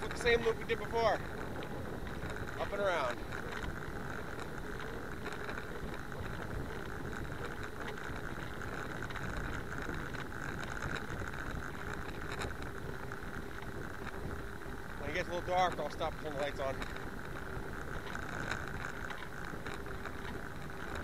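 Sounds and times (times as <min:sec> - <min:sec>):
bicycle tyres on asphalt: 0:00.0 - 0:21.0
wind on microphone: 0:00.0 - 0:21.0
faint clicks: 0:01.3 - 0:21.0.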